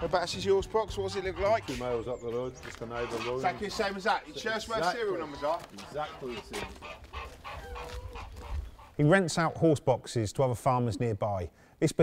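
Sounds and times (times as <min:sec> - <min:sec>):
faint animal calls: 0:01.0 - 0:09.7.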